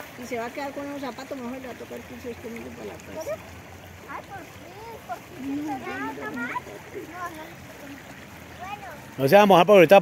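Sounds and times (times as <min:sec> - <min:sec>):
river running over stones: 0:00.0 - 0:10.0.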